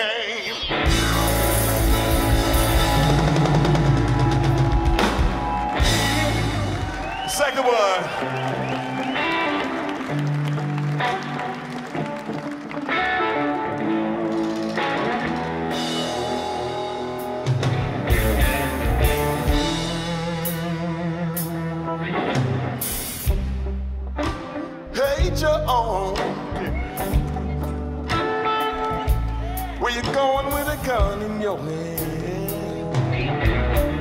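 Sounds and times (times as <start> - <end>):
electric guitar riff: 0.2 - 34.0
electric bass: 0.7 - 7.2, 13.8 - 34.0
drum kit: 0.7 - 7.7, 13.9 - 34.0.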